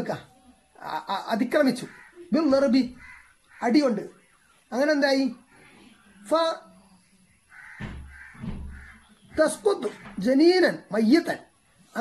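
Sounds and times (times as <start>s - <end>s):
harsh bird calls: 0.8s - 5.8s, 7.4s - 11.0s.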